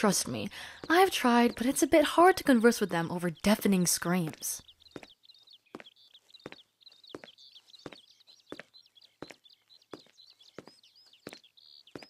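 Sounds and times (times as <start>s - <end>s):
small birds chirping: 0.0s - 12.0s
footsteps walking: 0.8s - 1.7s, 4.1s - 12.0s.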